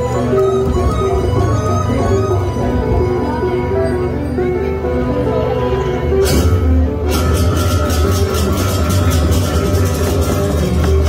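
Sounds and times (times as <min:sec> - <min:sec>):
gamelan music: 0:00.0 - 0:11.0.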